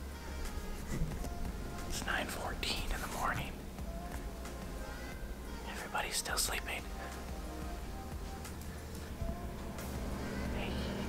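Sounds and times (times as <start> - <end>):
steady low hum: 0.0 - 11.0
person whispering: 1.9 - 3.6, 5.6 - 7.1, 10.4 - 11.0.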